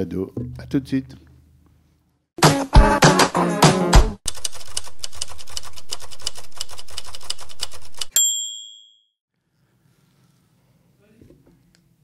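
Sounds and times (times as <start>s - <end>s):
typewriter keystrokes: 4.3s - 8.1s
bell ding: 8.1s - 9.1s.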